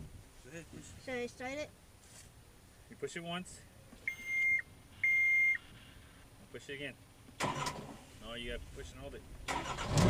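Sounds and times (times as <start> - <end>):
high beeps from control panel: 4.1 - 5.6.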